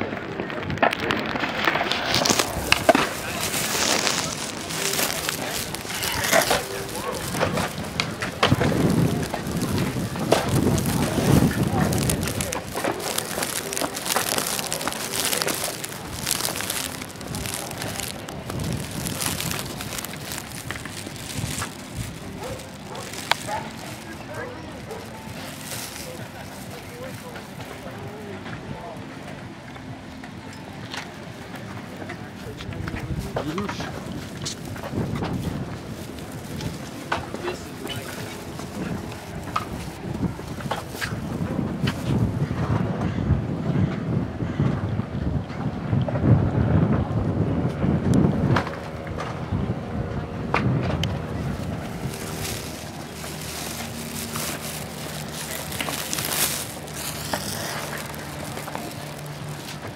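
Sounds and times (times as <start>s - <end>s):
indistinct voices: 0.0s - 41.5s.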